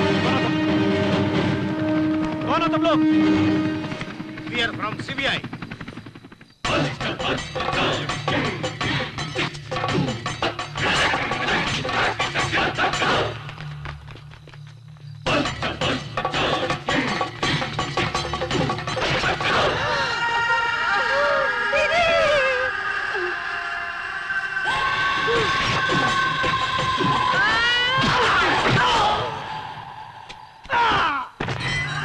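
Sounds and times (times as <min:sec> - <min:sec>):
dramatic film score: 0:00.0 - 0:32.0.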